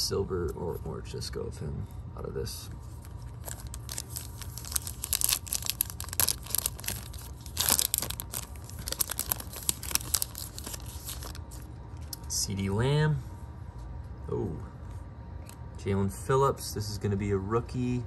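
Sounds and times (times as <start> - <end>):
foil wrapper crinkling and tearing: 3.0 - 11.7.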